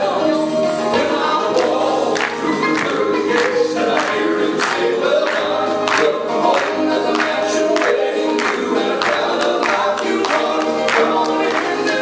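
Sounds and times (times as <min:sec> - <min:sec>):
male vocal trio singing in harmony: 0:00.0 - 0:12.0
piano accompaniment: 0:00.0 - 0:12.0
hands clapping on the beat: 0:00.7 - 0:12.0.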